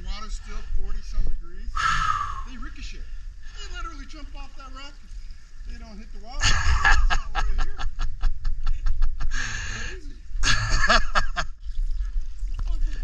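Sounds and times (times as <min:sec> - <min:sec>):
steady low rumble: 0:00.0 - 0:13.0
person laughing: 0:06.4 - 0:11.5.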